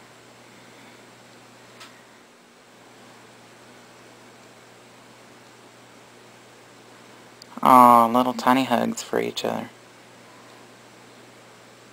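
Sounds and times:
faint steady hiss: 0:00.0 - 0:11.9.

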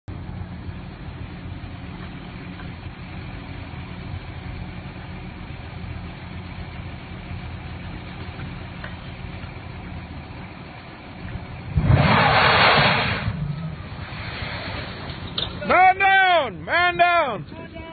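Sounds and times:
low engine hum: 0:00.0 - 0:17.9
fireball roaring rush: 0:11.7 - 0:15.2.

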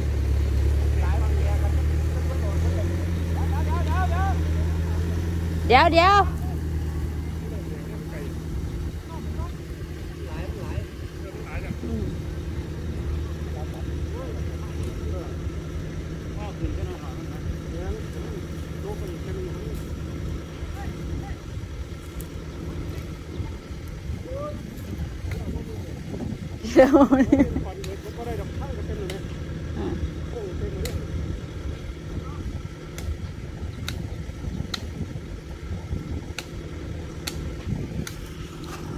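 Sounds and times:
engine running low hum: 0:00.0 - 0:38.9.

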